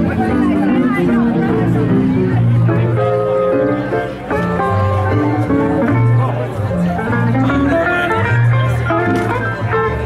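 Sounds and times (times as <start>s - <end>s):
guitar-led band music: 0.0s - 10.0s
steady bass line: 0.0s - 10.0s.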